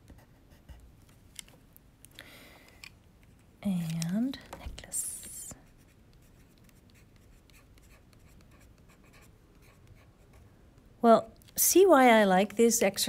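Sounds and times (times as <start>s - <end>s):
pencil scratching on paper: 5.6s - 10.5s.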